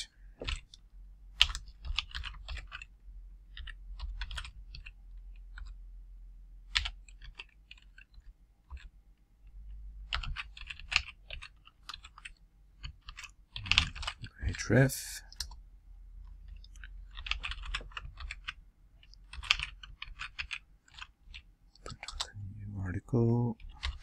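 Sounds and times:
typing on computer keyboard: 0:00.4 - 0:00.8, 0:01.4 - 0:05.8, 0:06.7 - 0:09.0, 0:10.0 - 0:14.3, 0:16.4 - 0:22.3, 0:23.6 - 0:24.0.

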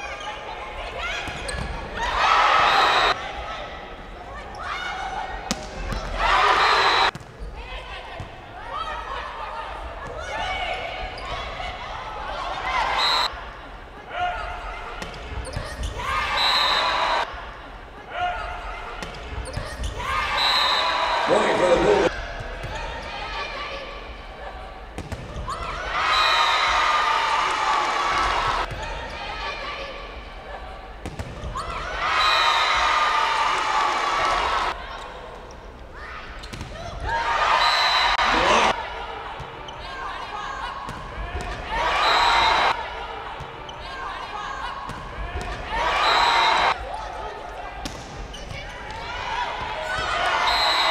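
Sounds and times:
people shouting and cheering: 0:00.0 - 0:15.0, 0:15.7 - 0:19.0, 0:20.0 - 0:30.9, 0:31.5 - 0:35.3, 0:36.0 - 0:47.9, 0:48.6 - 0:50.9
voices in a hall: 0:00.0 - 0:50.9.

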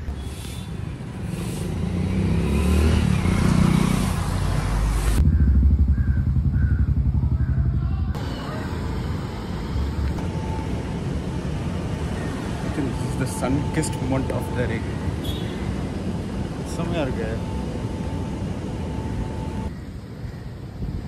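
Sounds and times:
vehicle engine running: 0:01.3 - 0:15.0
rapid low pulsing: 0:05.2 - 0:07.9.

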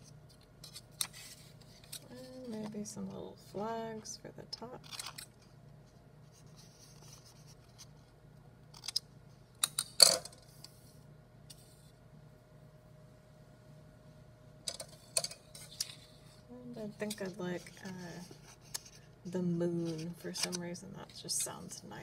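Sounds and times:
low room hum: 0:00.0 - 0:22.0.

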